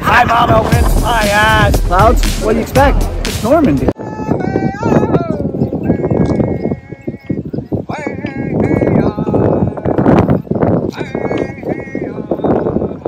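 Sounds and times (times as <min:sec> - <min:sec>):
uneven knocking beat: 0:00.6 - 0:04.0
ceremonial singing voices: 0:04.0 - 0:13.0.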